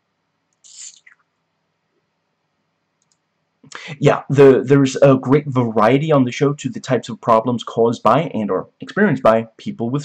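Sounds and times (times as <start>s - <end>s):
breathy hiss: 0.7s - 1.1s, 3.7s - 4.1s
man talking: 0.7s - 1.1s, 3.7s - 10.0s
faint clicks: 3.0s - 3.3s.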